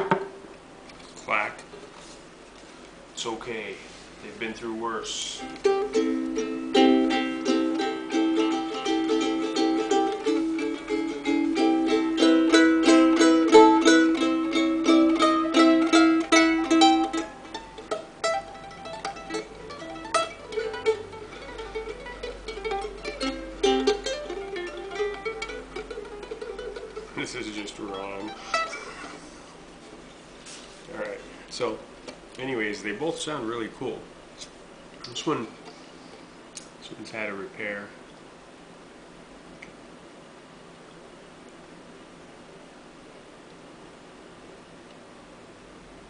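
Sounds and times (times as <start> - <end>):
ukulele strumming: 0.0 - 0.5, 5.2 - 29.3.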